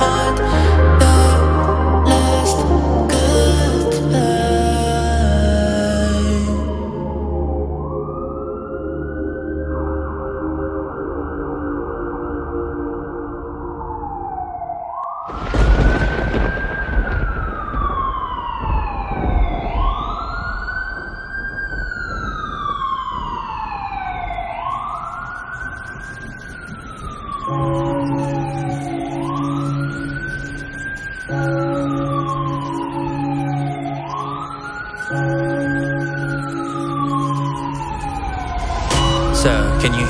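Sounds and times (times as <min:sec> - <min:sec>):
low synth chord: 0:00.0 - 0:14.4, 0:35.1 - 0:40.0
emergency siren wailing: 0:00.0 - 0:40.0
deep boom with rush: 0:15.4 - 0:23.9, 0:37.8 - 0:40.0.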